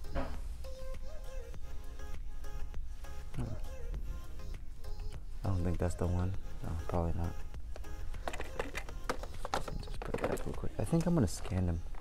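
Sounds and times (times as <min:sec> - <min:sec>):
packaging clicking and crackling: 0:08.2 - 0:12.0.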